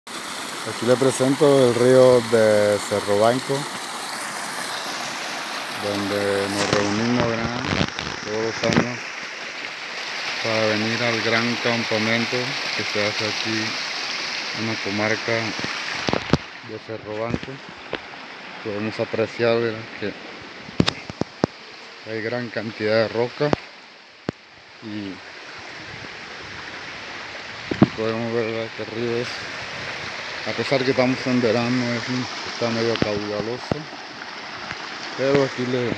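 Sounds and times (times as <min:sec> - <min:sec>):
river water rushing over rocks: 0:00.1 - 0:35.9.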